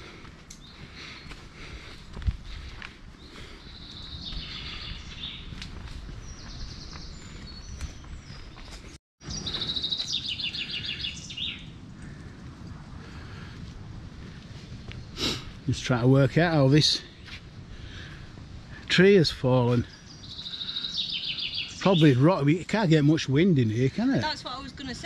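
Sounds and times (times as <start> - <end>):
songbirds singing: 0.5 - 1.9, 3.1 - 12.2, 18.9 - 25.0.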